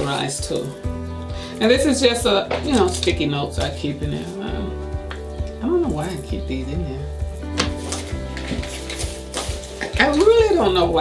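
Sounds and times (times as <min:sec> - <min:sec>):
background music: 0:00.0 - 0:11.0
items rustling in a handbag: 0:02.4 - 0:04.5, 0:07.3 - 0:11.0.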